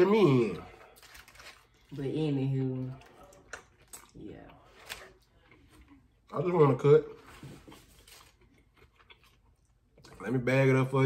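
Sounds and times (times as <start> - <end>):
faint chewing: 0.6 - 6.4, 7.1 - 10.3.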